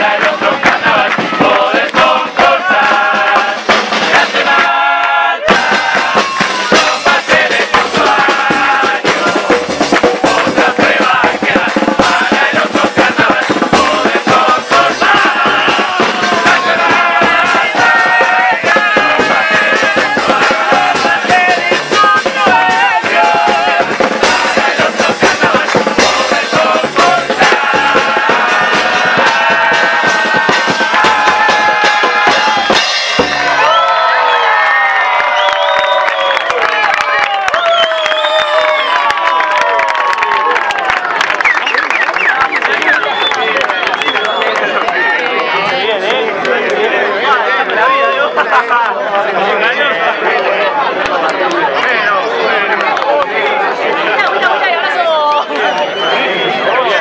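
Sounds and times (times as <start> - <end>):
rhythmic drumming: 0.0 - 33.9
crowd singing: 0.0 - 34.5, 41.7 - 57.0
shouts and cheering: 4.1 - 9.5, 12.5 - 57.0.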